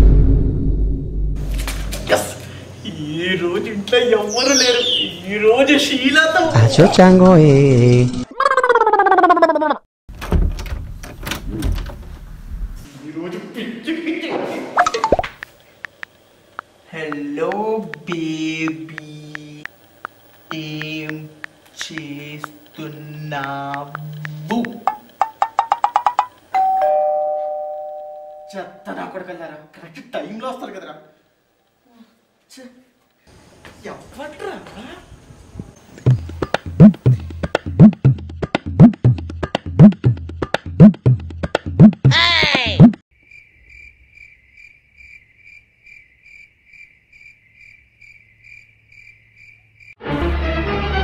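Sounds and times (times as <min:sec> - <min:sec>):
sudden loud burst: 0:00.0 - 0:01.5
two-tone doorbell chime: 0:26.6 - 0:28.9
cricket chirping: 0:43.1 - 0:50.0.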